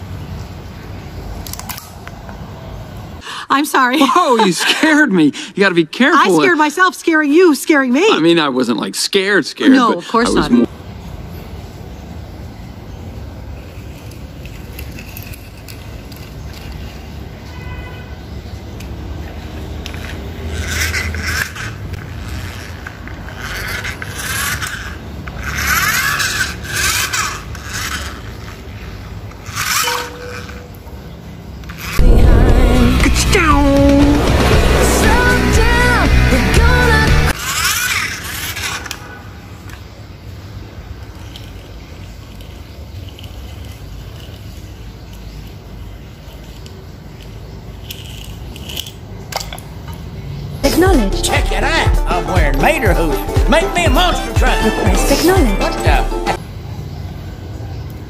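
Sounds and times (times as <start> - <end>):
toy cars clicking on tiles: 13.6 - 17.3, 18.7 - 31.0, 31.6 - 32.0, 37.3 - 39.9, 41.0 - 50.1.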